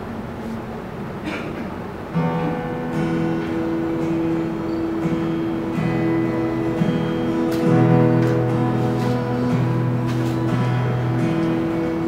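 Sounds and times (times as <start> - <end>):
acoustic guitar chords: 2.1 - 12.0.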